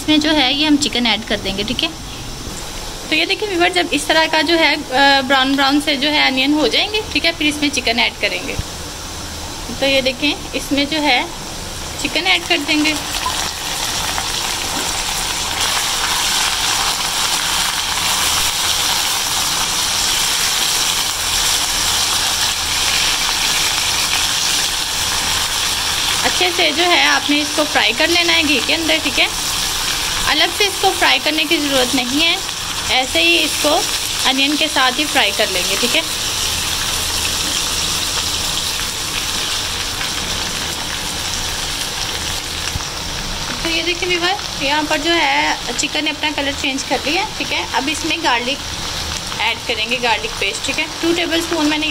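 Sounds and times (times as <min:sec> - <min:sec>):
chicken sizzling in a frying pan: 0:02.6 - 0:51.9.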